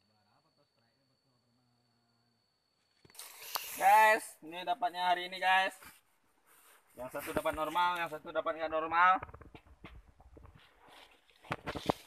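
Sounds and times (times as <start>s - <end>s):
steady hiss: 3.0s - 8.4s
man talking: 7.0s - 9.2s.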